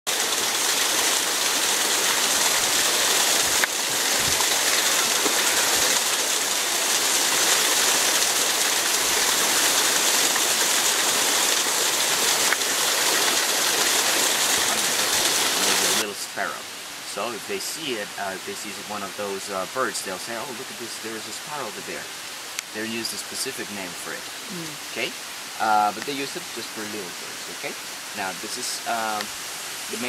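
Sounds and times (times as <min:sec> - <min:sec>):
rushing water: 0:00.1 - 0:30.0.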